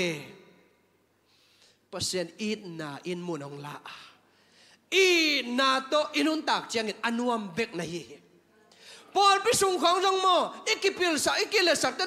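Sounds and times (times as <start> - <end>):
man speaking amplified: 0.0 - 0.6, 4.9 - 8.2, 9.1 - 12.0
faint breath in: 1.2 - 1.9, 8.6 - 9.1.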